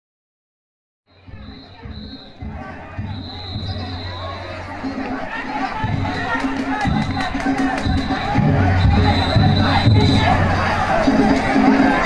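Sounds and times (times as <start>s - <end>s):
high steady whistle tone: 1.1s - 5.1s, 6.9s - 10.4s
crowd calling and shouting: 1.1s - 12.0s
low drum beats: 1.1s - 12.0s.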